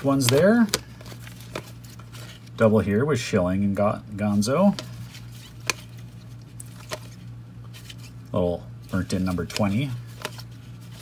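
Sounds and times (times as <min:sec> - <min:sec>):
trading cards being flipped: 0:00.0 - 0:02.6, 0:04.7 - 0:08.2, 0:08.8 - 0:11.0
steady low hum: 0:00.0 - 0:11.0.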